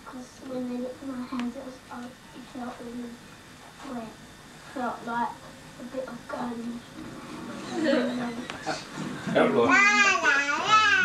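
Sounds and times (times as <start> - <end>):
toddler vocal sounds: 9.7 - 11.0.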